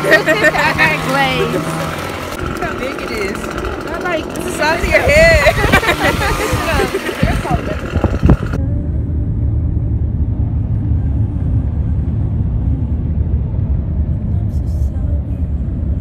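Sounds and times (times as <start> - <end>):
laughter: 0.0 - 2.0, 4.9 - 8.0
car road noise rumble: 0.0 - 16.0.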